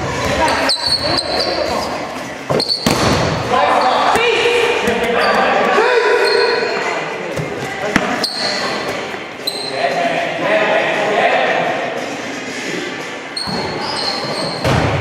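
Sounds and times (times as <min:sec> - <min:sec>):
dodgeballs hitting floor and players: 0:00.0 - 0:06.6, 0:07.2 - 0:09.4, 0:13.4 - 0:15.0.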